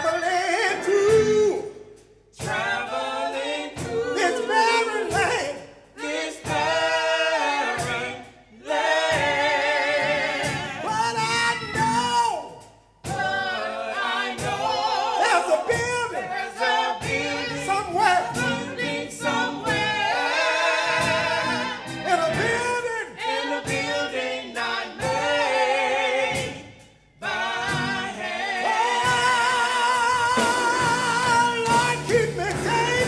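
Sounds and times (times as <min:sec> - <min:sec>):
group singing gospel song: 0:00.0 - 0:33.0
steady beat: 0:00.1 - 0:33.0.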